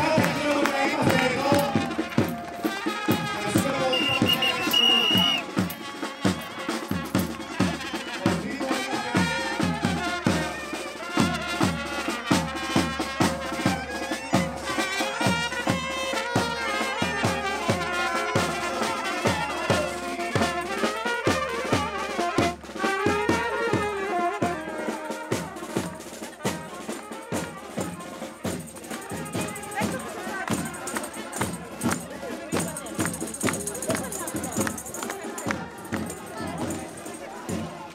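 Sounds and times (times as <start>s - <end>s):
marching band playing: 0.0s - 37.9s
steady drum beat: 0.0s - 37.9s.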